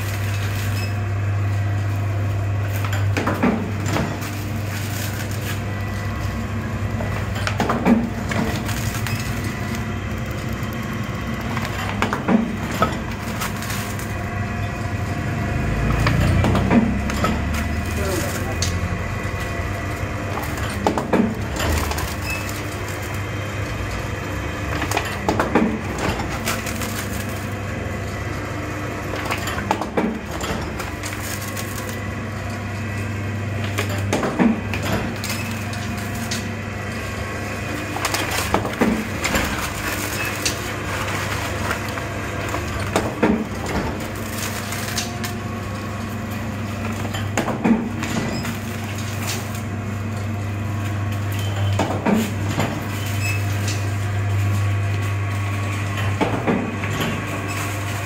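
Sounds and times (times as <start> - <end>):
machine motor hum: 0.0 - 58.0.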